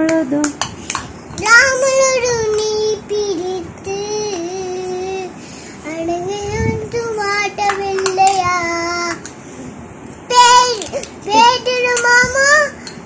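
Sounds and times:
girl singing unaccompanied: 1.4s - 9.3s, 10.2s - 13.0s.

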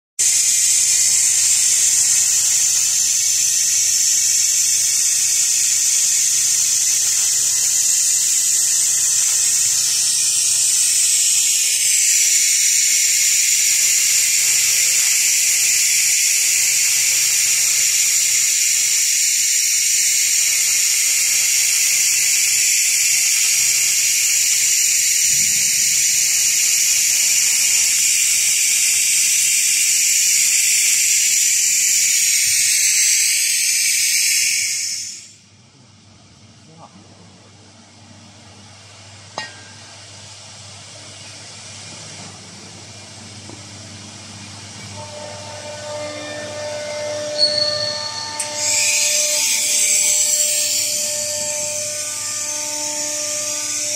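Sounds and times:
laser ablating rust hissing: 0.2s - 35.4s, 44.2s - 53.9s.

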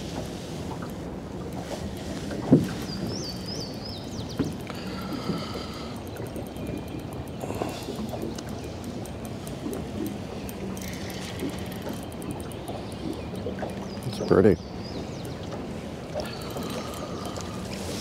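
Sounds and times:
water washing against boat hull: 0.0s - 18.0s
fishing reel ticking: 0.7s - 18.0s.

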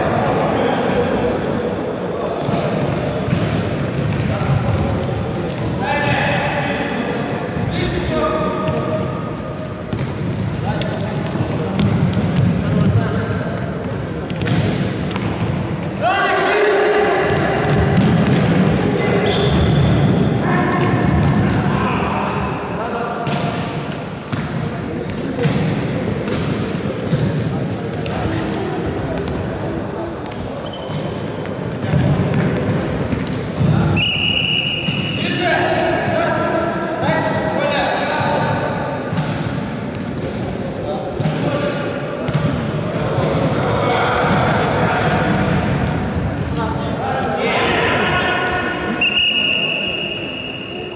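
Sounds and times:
referee's whistle: 34.0s - 35.2s, 49.0s - 50.9s.

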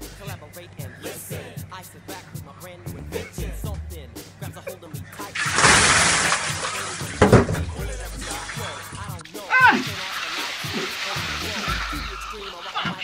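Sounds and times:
hip hop music: 0.0s - 13.0s
water pouring and splashing: 5.2s - 13.0s
person yelling: 9.4s - 10.0s.

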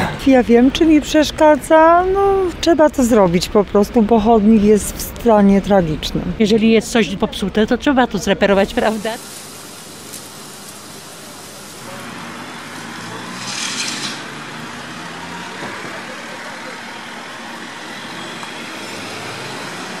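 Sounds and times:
road vehicles rumbling: 0.0s - 20.0s.

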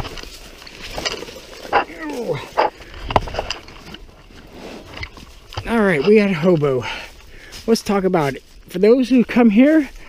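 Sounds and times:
person groaning: 1.9s - 2.6s
camera handling knocks and rustling: 2.6s - 4.1s.

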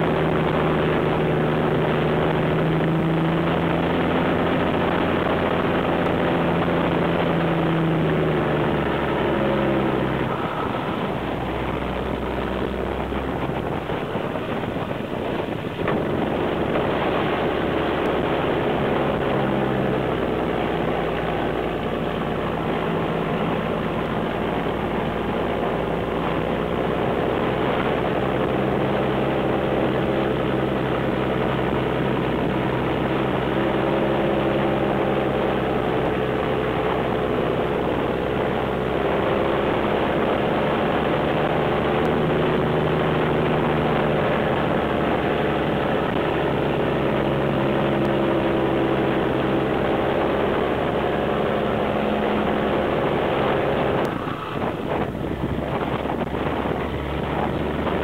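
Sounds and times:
diesel truck engine running: 0.0s - 58.0s.

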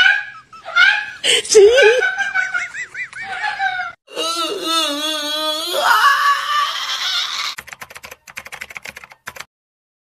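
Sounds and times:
man shrieking laugh: 0.0s - 4.6s, 5.4s - 7.6s.

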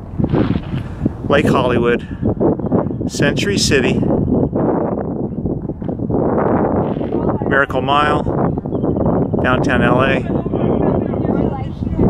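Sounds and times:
wind on microphone: 0.0s - 12.0s.

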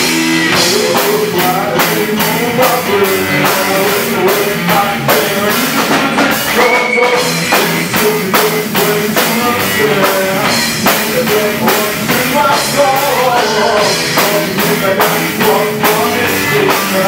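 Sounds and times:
bass guitar: 0.0s - 17.0s
drum kit beat: 0.0s - 17.0s
person singing: 0.5s - 17.0s.

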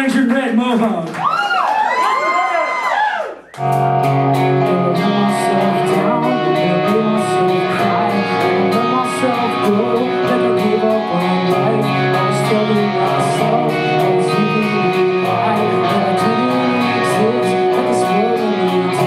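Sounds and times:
electric guitars holding chords: 3.6s - 19.0s.

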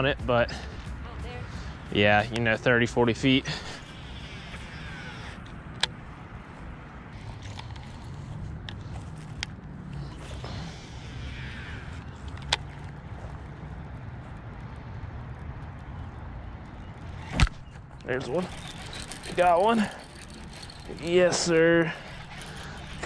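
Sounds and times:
fishing line whirring off spool: 2.2s - 5.9s, 7.1s - 13.9s, 18.2s - 23.0s
fishing reel clicks: 2.2s - 5.9s, 10.0s - 13.0s, 18.2s - 23.0s.

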